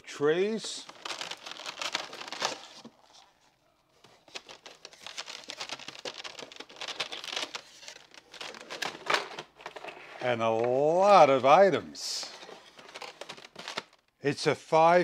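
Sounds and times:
plastic trays crinkling: 0.3s - 14.1s.

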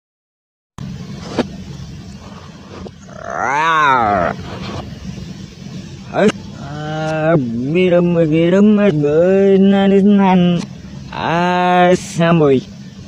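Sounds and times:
steady low hum: 0.8s - 13.0s
loud wailing cry: 3.1s - 4.4s.

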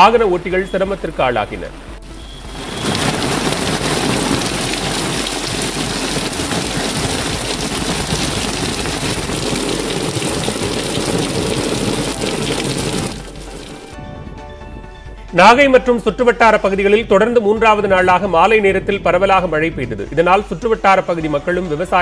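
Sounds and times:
heavy rain on ground: 1.8s - 14.0s.

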